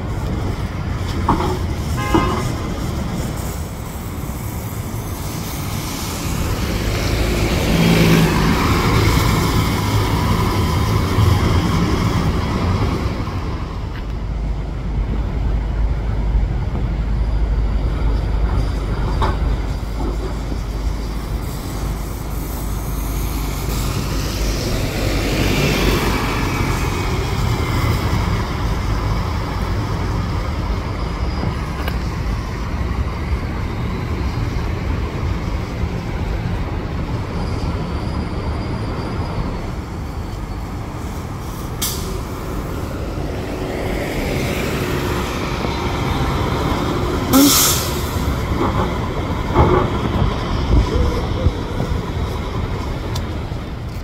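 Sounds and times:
buses driving past: 0.0 - 54.0.

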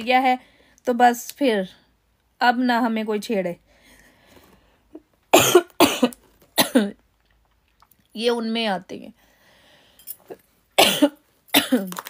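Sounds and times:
woman coughing: 5.3 - 7.0, 10.8 - 12.0.

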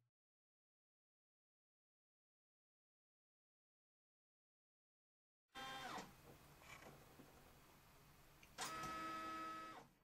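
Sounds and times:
small motor whining: 8.6 - 9.9.

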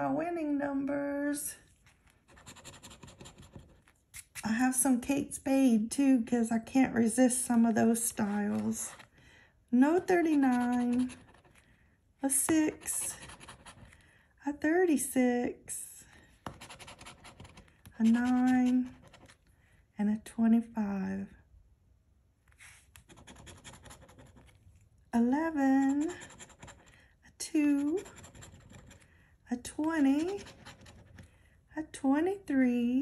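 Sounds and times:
scratching lottery ticket: 2.0 - 4.4, 10.2 - 11.7, 16.5 - 19.5, 22.6 - 24.6, 25.8 - 27.0, 27.6 - 29.1, 29.8 - 31.3.

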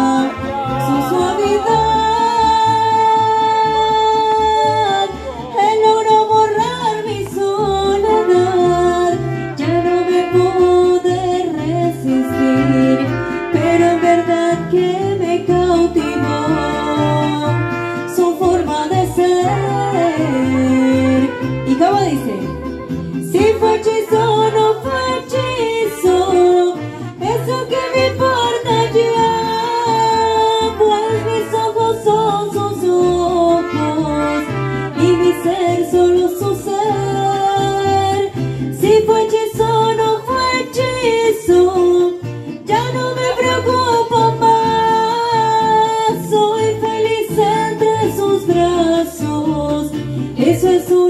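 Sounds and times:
strummed guitars: 0.0 - 51.0
woman singing: 0.0 - 51.0.

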